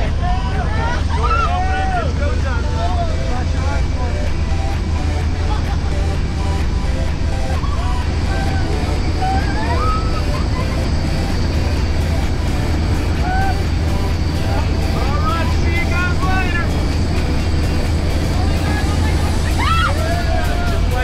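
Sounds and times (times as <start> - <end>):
plane engine and propeller drone: 0.0 - 21.0
voices: 0.0 - 21.0.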